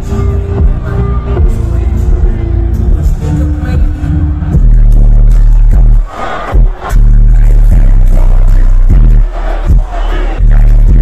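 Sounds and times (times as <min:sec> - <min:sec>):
live hip-hop music: 0:00.0 - 0:11.0.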